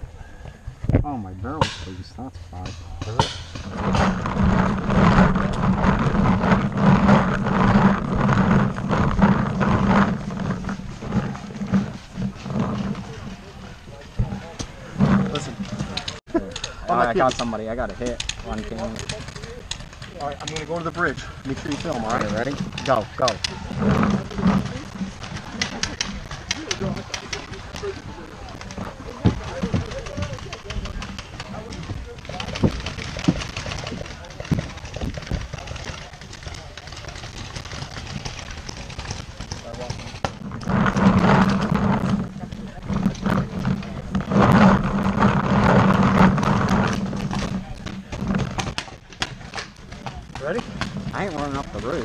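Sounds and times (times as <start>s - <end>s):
gear knocking: 2.6s - 52.0s
footfalls: 17.0s - 52.0s.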